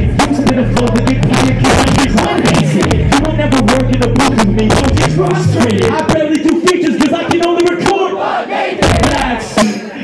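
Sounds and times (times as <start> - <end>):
hip hop drum beat: 0.0 - 8.1, 8.7 - 10.0
shouted chant-like rap vocals: 0.1 - 3.9, 6.8 - 10.0.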